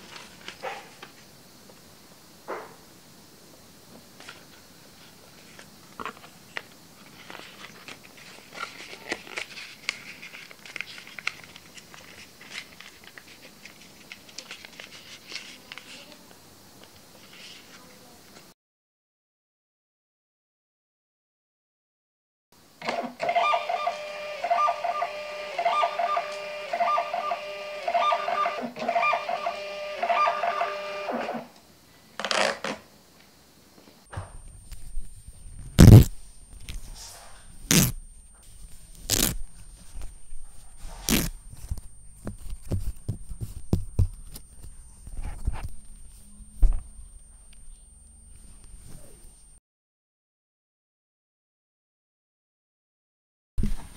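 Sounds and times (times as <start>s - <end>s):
cardboard rustling and scraping: 5.4s - 16.1s, 34.6s - 46.1s.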